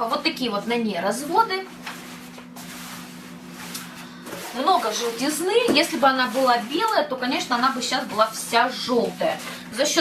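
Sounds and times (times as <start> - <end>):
steady low hum: 0.0 - 10.0
shower curtain rustling: 1.8 - 10.0.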